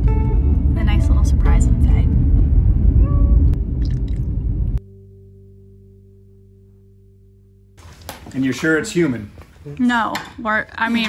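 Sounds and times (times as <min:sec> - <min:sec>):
held low musical chord: 0:00.0 - 0:03.7, 0:04.4 - 0:07.8
car cabin road rumble: 0:00.0 - 0:04.8.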